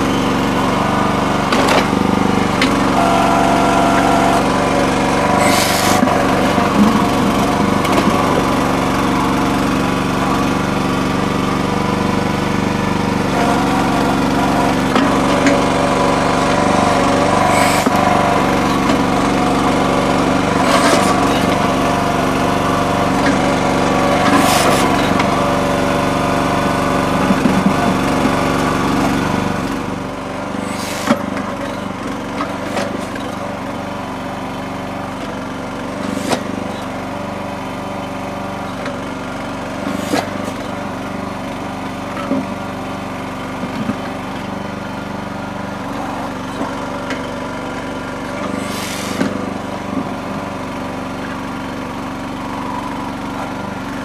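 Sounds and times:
small engine running under load: 0.0 - 54.0
short hydraulic hisses: 5.4 - 6.0, 17.4 - 18.0, 24.3 - 25.1, 30.6 - 31.2, 36.0 - 36.5, 39.9 - 40.6, 48.6 - 49.4.

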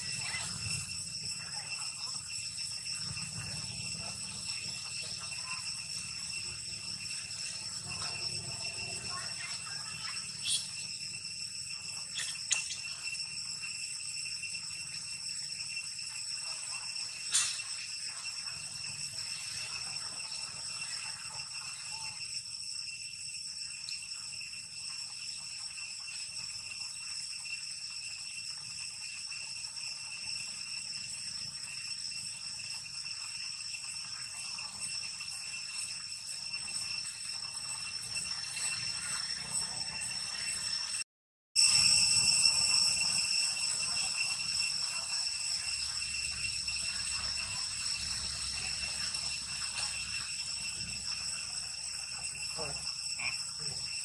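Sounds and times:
high-pitched insect drone: 0.0 - 54.0.

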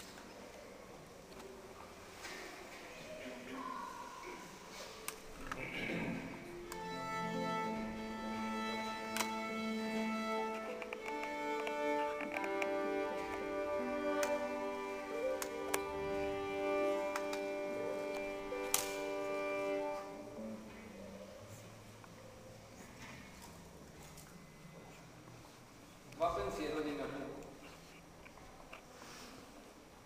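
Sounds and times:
violin bowed tones: 6.4 - 20.7.

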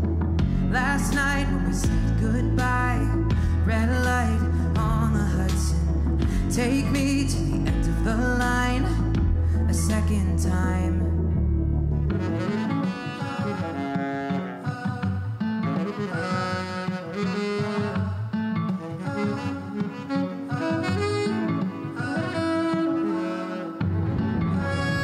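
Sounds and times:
saxophone: 0.0 - 25.0
small band playing: 12.1 - 25.0.

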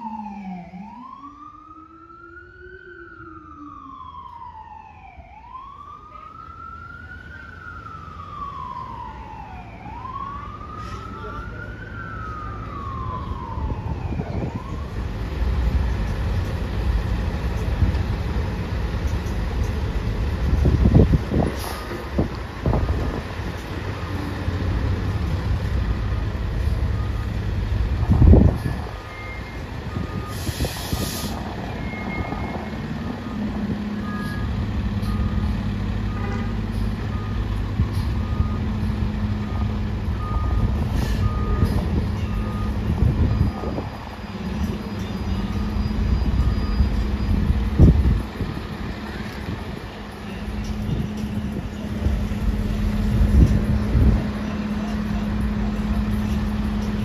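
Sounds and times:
diesel engine running: 15.0 - 57.0
air brake hiss: 21.4 - 22.0, 30.3 - 31.5, 40.9 - 41.3
backup alarm beeping: 28.3 - 31.0, 31.6 - 36.4, 37.0 - 48.5.

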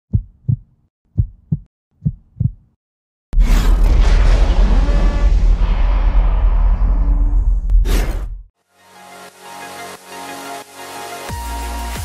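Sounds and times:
heartbeat thumps: 0.1 - 2.8
loud boom with low rumble: 3.4 - 7.8.

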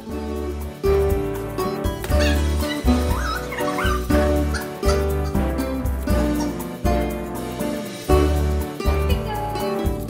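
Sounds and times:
background music with steady beat: 0.0 - 10.0
dog whining and yipping: 2.0 - 5.5.

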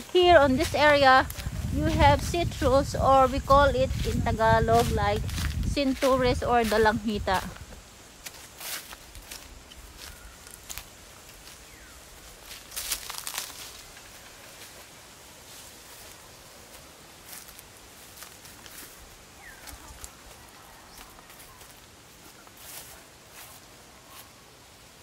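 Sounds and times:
footsteps through dry leaves: 0.0 - 24.8
faint outdoor background: 0.0 - 25.0.

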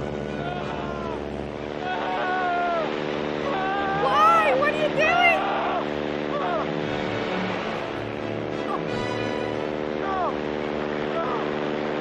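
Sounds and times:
propeller plane engine droning: 0.0 - 12.0
man yelling: 1.8 - 6.7.

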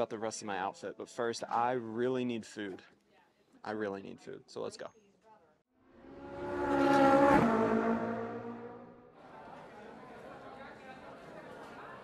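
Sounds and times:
car passing by: 5.9 - 9.1.

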